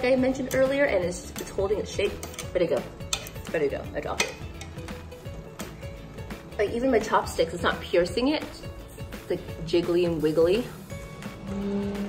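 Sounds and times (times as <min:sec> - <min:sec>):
chopsticks clicking on metal pot: 0:02.1 - 0:04.9.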